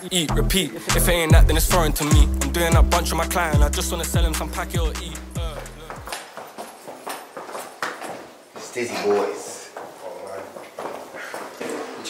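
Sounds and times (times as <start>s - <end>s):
footsteps going down hard stairs: 3.6s - 12.0s.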